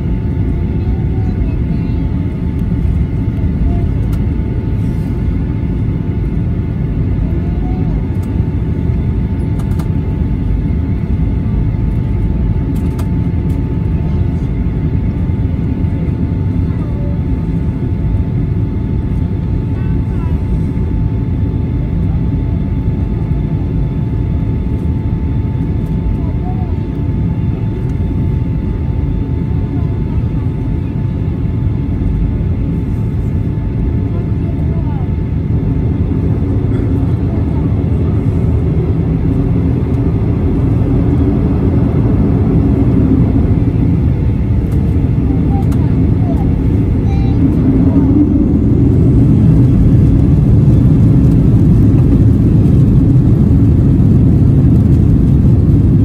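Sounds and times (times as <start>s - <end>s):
jet engine rumble: 0.0s - 56.0s
steady engine whine: 0.0s - 56.0s.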